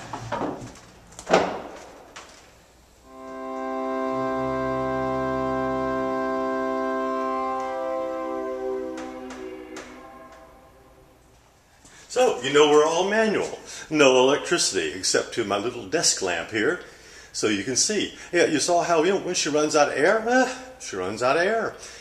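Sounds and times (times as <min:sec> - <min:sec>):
pipe organ chord: 0:03.0 - 0:11.5.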